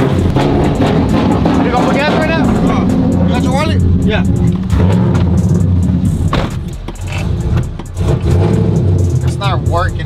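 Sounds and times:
truck engine idling unevenly: 0.0 - 8.1
sharp engine knock: 6.2 - 8.0.

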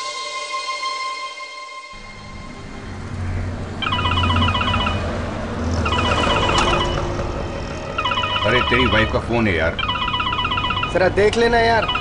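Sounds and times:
car rumbling on road: 2.0 - 12.0
phone ringtone trilling: 3.8 - 12.0.

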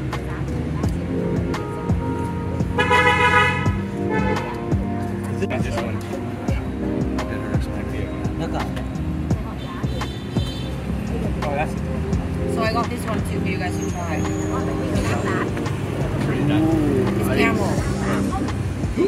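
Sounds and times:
music with held tones: 0.0 - 19.0
road traffic: 0.0 - 19.0
voices: 0.0 - 19.0.

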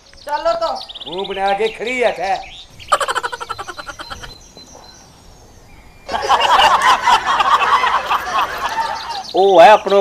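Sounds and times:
animal rapid pulsed call: 2.7 - 4.4.

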